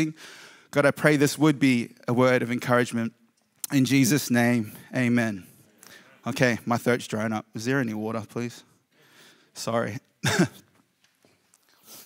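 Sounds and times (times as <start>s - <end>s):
man clearing throat: 10.2s - 10.7s.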